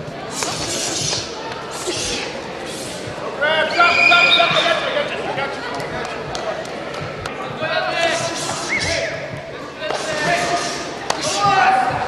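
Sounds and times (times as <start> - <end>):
crowd murmur echoing in a hall: 0.0 - 12.0.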